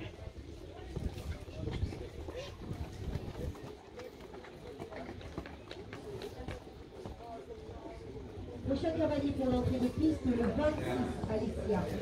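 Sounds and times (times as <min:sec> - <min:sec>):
wind rumble on microphone: 0:00.0 - 0:03.7.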